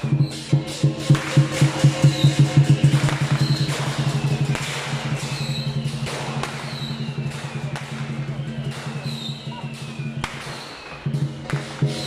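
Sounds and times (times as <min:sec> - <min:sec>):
big drum beating fast: 0:00.1 - 0:09.0
cymbal crashes: 0:00.3 - 0:08.1.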